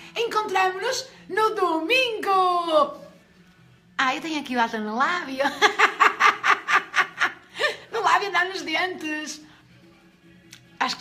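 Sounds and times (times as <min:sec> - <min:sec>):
woman laughing: 0:05.4 - 0:07.9.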